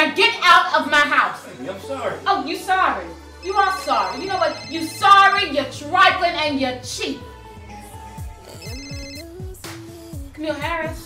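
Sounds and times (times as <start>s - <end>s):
bass-heavy background music: 0.0s - 11.0s
phone ringtone pulsing: 3.4s - 5.6s, 8.5s - 9.4s.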